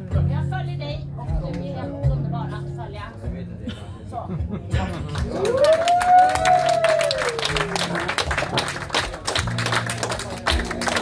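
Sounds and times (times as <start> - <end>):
small audience clapping: 4.8 - 11.0
person cheering: 5.3 - 8.0.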